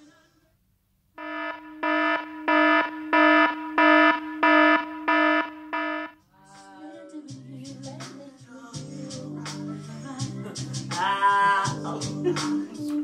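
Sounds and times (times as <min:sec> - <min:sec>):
pulsing electronic buzzer tone: 0:01.2 - 0:06.2.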